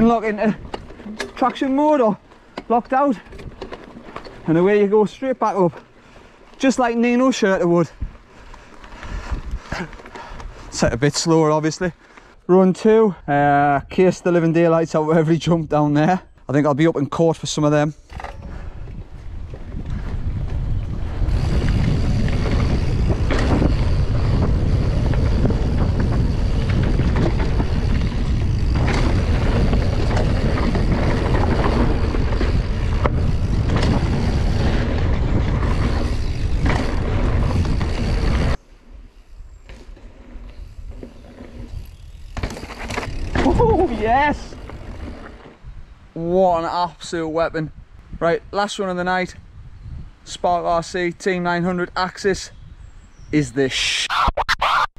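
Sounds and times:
wind buffeting microphone: 7.8s - 11.0s, 18.1s - 38.6s, 41.6s - 51.2s, 51.8s - 53.4s
bike tyre roar on dirt: 18.5s - 46.3s
bike knocking over bumps: 21.5s - 38.5s, 42.3s - 43.8s.

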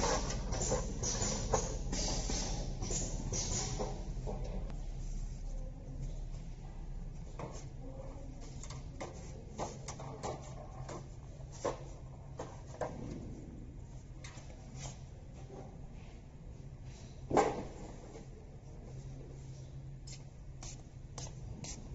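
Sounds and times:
steady low hum: 0.0s - 21.9s.

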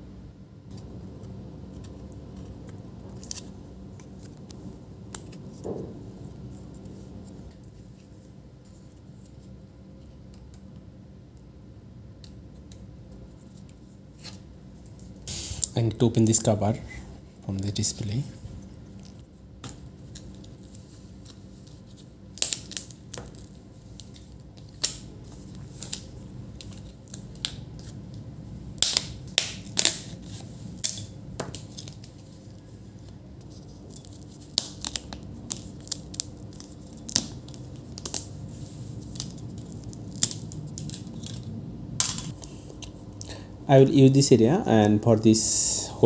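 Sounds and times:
faint low hum: 0.0s - 46.0s.

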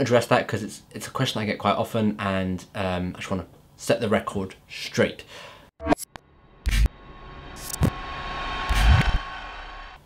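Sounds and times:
rushing whoosh: 6.6s - 10.0s.

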